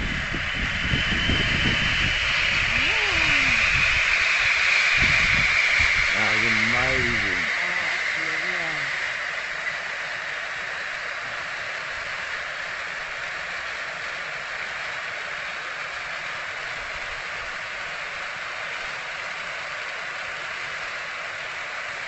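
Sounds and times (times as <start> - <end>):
firework fountains hissing: 0.0 - 22.0.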